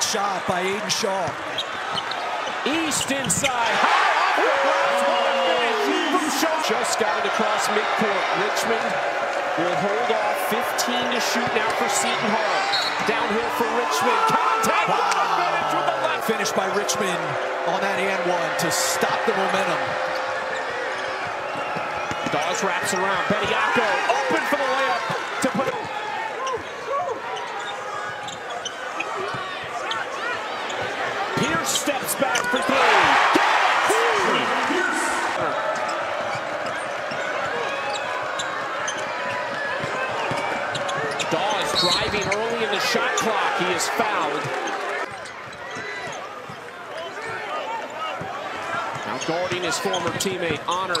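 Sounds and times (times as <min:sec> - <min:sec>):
arena crowd noise: 0:00.0 - 0:51.0
sneakers squeaking on hardwood: 0:01.2 - 0:03.8, 0:35.8 - 0:43.2, 0:48.9 - 0:51.0
referee's whistle: 0:12.6 - 0:13.1, 0:40.8 - 0:42.5.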